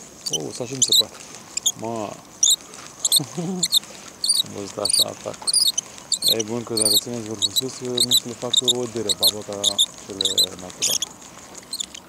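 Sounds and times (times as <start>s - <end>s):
small bird chirping: 0.0s - 12.0s.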